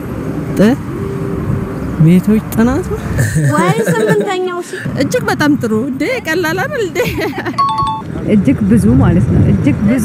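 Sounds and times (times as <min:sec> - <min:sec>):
city street traffic: 0:00.0 - 0:10.0
people talking in interview: 0:00.5 - 0:01.0, 0:01.8 - 0:10.0.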